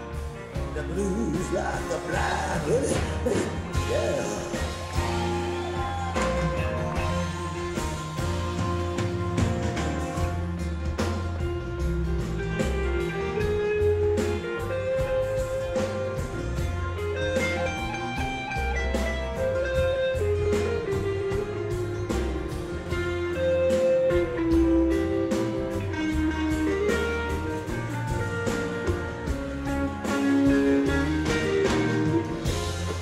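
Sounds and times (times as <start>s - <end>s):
bass and drums beat: 0.0s - 33.0s
electric guitar melodic lines: 0.0s - 33.0s.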